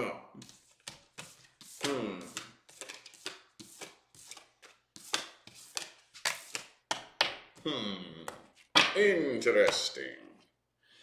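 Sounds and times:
cards tapping on wooden table: 0.4s - 7.6s.

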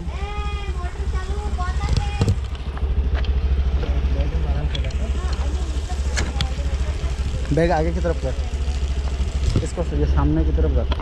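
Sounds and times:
scooter engine idling: 0.0s - 11.0s.

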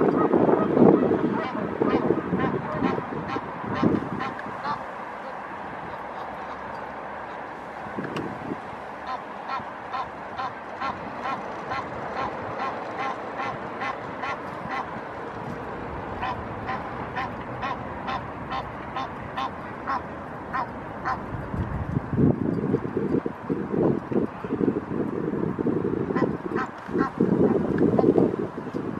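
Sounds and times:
goose honking: 0.0s - 7.4s, 8.9s - 15.0s, 16.2s - 21.3s, 26.1s - 28.1s.

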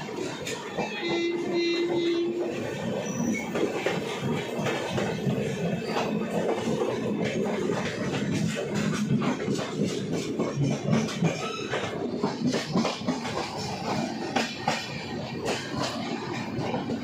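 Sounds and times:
train rumbling and clattering on rails: 0.0s - 17.0s
train horn held note: 0.8s - 2.5s.

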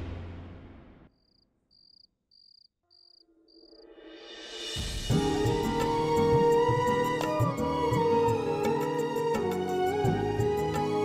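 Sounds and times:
cricket chirping: 1.1s - 3.9s
soft background music: 4.8s - 11.0s.

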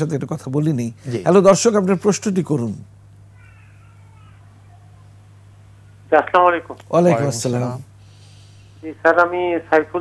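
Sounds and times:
steady low hum: 0.0s - 10.0s
man speaking: 6.1s - 7.9s.

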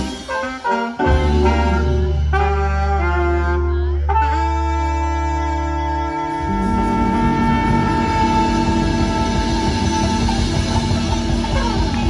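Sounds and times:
bass: 0.0s - 12.0s
drums: 0.0s - 12.0s
horn section holding long note: 0.0s - 12.0s.

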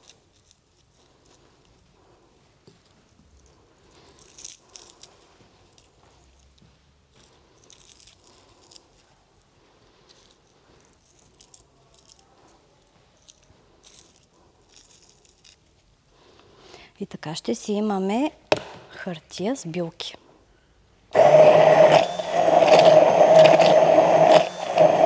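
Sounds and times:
dried herbs crackling: 21.2s - 25.0s.

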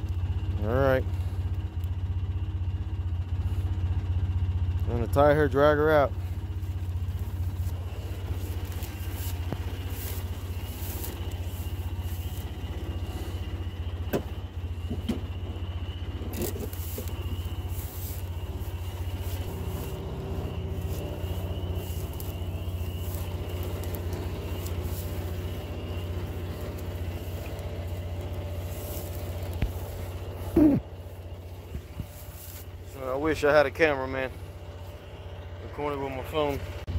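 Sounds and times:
utility vehicle engine idling: 0.0s - 36.9s.

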